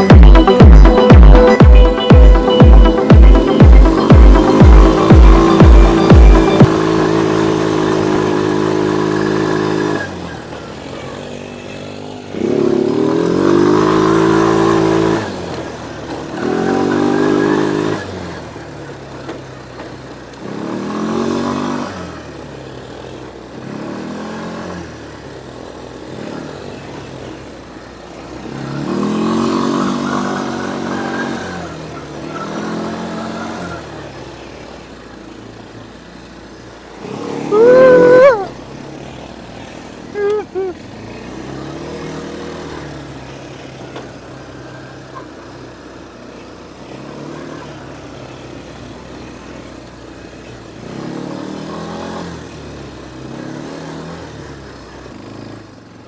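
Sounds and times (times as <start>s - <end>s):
quad bike engine revving: 0.0s - 56.0s.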